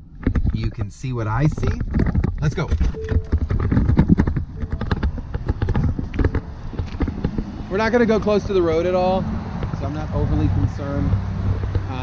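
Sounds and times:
camera handling rumble: 0.0 - 8.3
knocks and clicks of person climbing out: 0.1 - 7.6
footsteps on pavement: 1.4 - 12.0.

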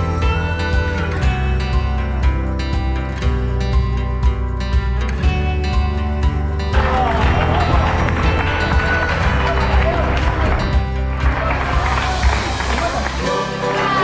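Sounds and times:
music with bass line: 0.0 - 14.0
spectators clapping: 6.7 - 14.0
spectators calling out: 6.8 - 14.0.

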